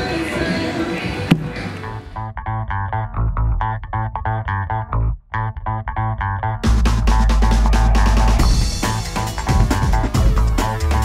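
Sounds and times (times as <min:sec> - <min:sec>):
band with drums: 0:01.3 - 0:02.0, 0:06.7 - 0:11.0
plucked riff over bass line: 0:01.3 - 0:11.0.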